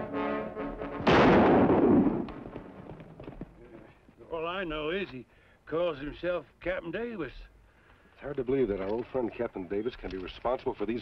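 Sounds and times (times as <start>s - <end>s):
loud crash: 1.0s - 2.3s.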